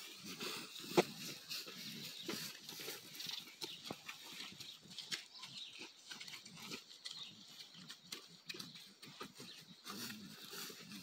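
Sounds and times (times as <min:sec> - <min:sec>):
hoof and footsteps on straw: 0:00.0 - 0:11.0.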